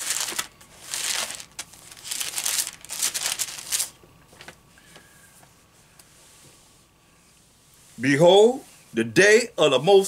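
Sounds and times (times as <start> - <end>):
book pages rustling: 0.0 - 4.6.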